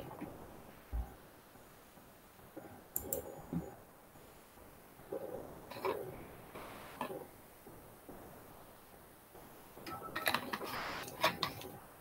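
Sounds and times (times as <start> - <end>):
soft clicks: 2.9 - 3.4.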